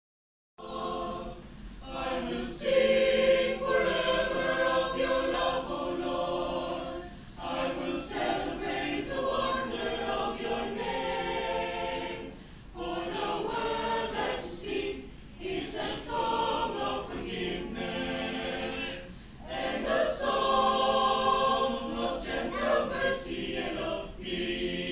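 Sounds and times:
mixed choir singing a cappella: 0.6 - 24.9.

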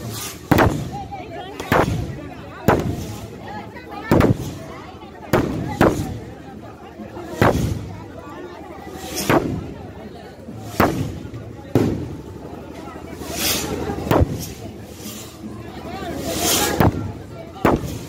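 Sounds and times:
fireworks bangs: 0.2 - 3.2, 4.1 - 4.6, 10.8 - 12.2.

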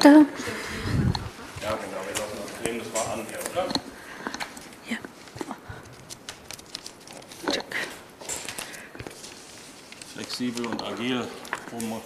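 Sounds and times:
paper rustling: 1.4 - 3.7, 4.5 - 12.0.

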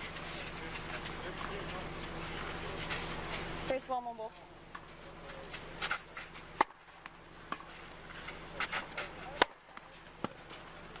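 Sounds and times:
racket hitting tennis ball: 6.6 - 10.4.

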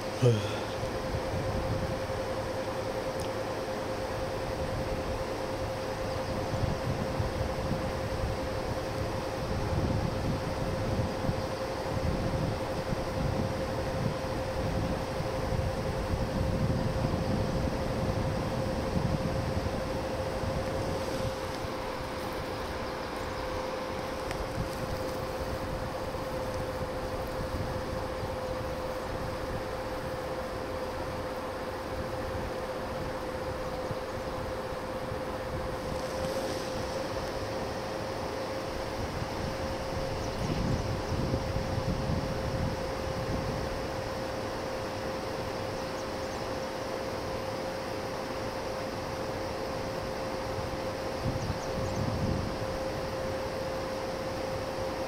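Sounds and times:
faint single-pitch hum: 0.0 - 55.0
steady hiss: 0.0 - 55.0
wind buffeting microphone: 6.2 - 37.8, 38.8 - 43.9, 51.1 - 53.2.

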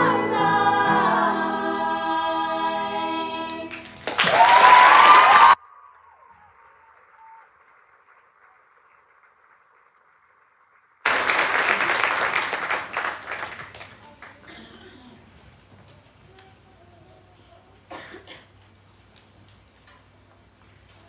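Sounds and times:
audience applauding: 3.6 - 14.5.

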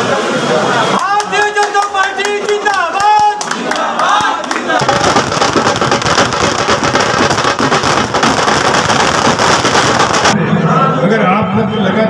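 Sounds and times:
firecrackers crackling: 4.8 - 10.4.

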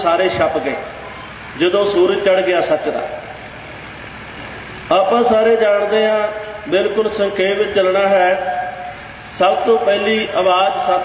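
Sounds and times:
steady background noise: 0.0 - 11.0
man talking: 1.6 - 3.2, 4.9 - 11.0.

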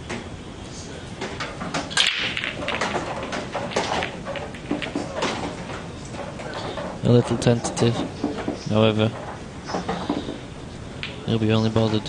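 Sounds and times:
pool balls clacking together: 1.2 - 12.0.

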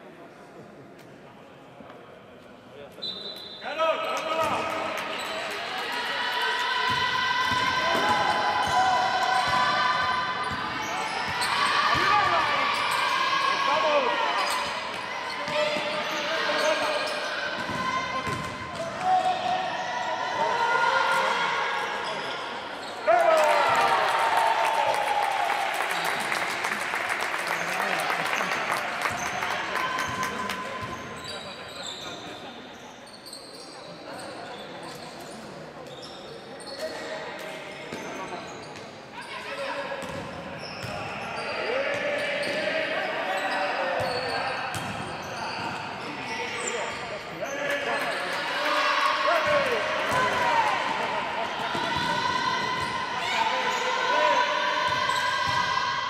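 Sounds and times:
basketball bouncing on court: 17.6 - 19.0, 44.7 - 45.0, 51.7 - 52.9.

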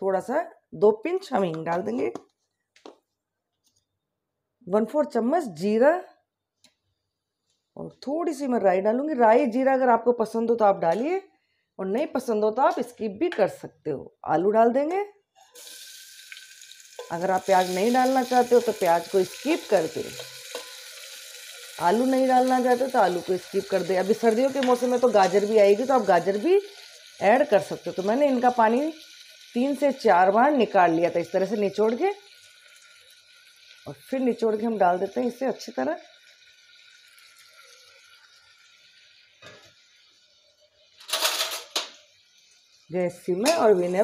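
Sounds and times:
hot oil sizzling: 15.5 - 44.0.

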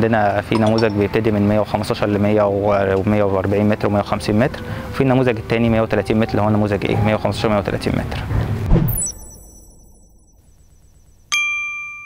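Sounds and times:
bell-like chime: 8.9 - 10.4, 11.3 - 12.0.

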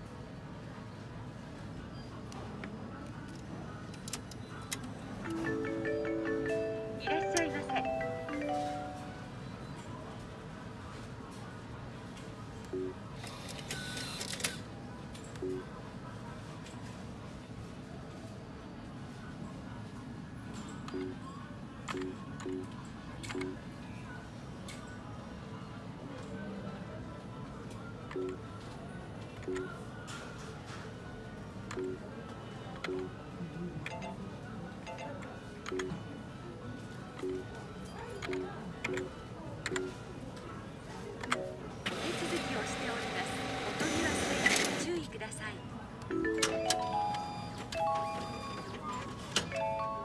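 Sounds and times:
keypad clicks: 21.9 - 22.6, 31.7 - 32.0, 34.9 - 35.9, 38.2 - 40.0
atm mechanism whirring: 41.1 - 45.1, 46.1 - 50.0.

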